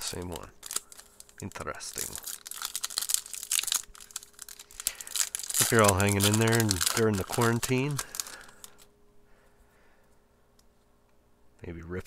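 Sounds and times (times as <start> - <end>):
foil wrapper crinkling and tearing: 0.0 - 8.9.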